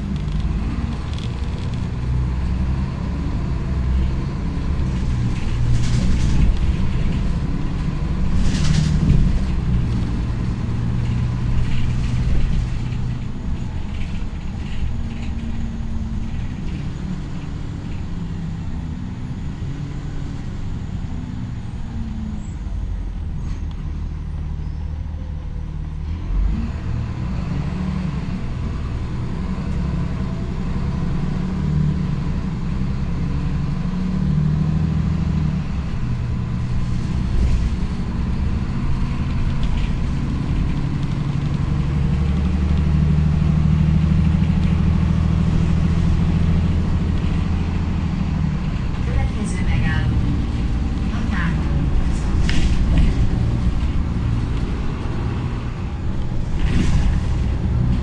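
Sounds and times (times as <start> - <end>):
bus engine hum: 0.0 - 58.0
road noise: 0.0 - 58.0
bus bump: 4.8 - 18.3, 48.7 - 58.0.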